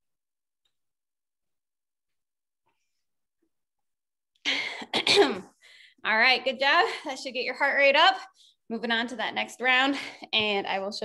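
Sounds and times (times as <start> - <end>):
woman clearing her throat: 4.8 - 5.5.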